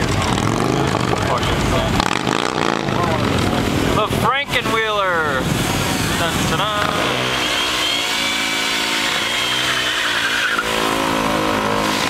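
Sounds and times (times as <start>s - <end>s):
engine revving: 0.0s - 4.0s, 5.4s - 12.0s
people talking: 0.0s - 7.4s
atv engines running: 0.0s - 12.0s.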